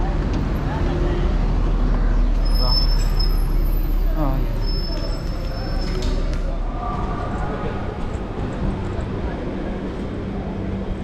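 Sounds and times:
low rumble of motor traffic: 0.0s - 11.0s
voices in background: 0.0s - 11.0s.

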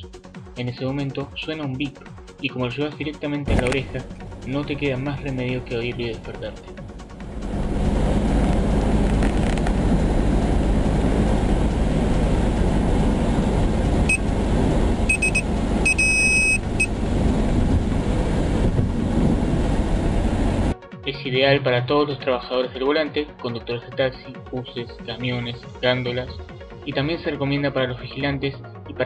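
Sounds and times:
car cabin road rumble: 3.5s - 20.7s
high-pitched alarm beeps: 14.1s - 14.3s, 15.1s - 16.9s.

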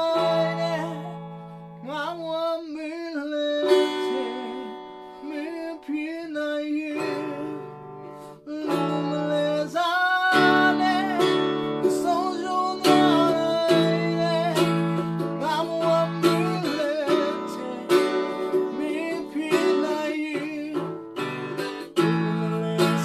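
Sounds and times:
man singing: 0.0s - 23.0s
strummed acoustic guitar: 0.0s - 23.0s.

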